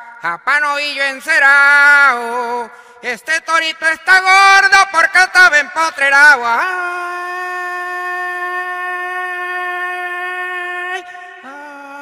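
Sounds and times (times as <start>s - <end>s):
man singing a long note: 0.0s - 12.0s.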